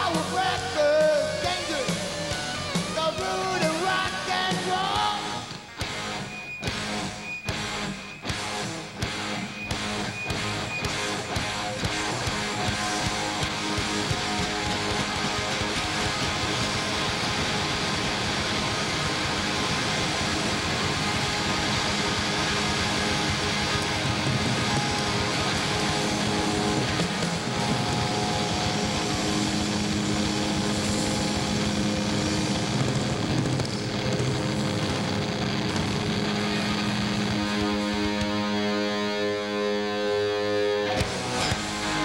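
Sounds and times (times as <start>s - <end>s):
loud rock band playing: 0.0s - 42.0s.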